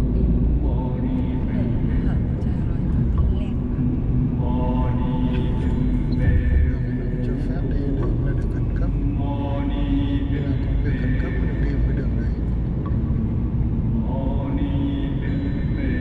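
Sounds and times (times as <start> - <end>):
people talking: 0.0 - 3.6, 4.6 - 12.5
car cabin road rumble: 0.0 - 16.0.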